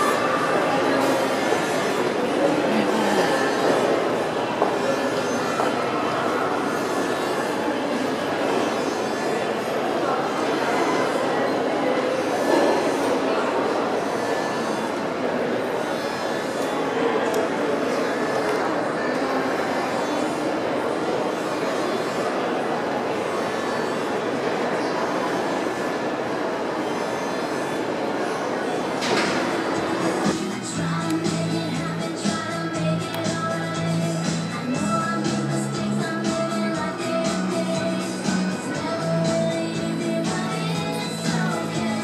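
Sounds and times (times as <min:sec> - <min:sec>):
echoing crowd noise: 0:00.0 - 0:42.0
shopping mall background noise: 0:00.0 - 0:42.0.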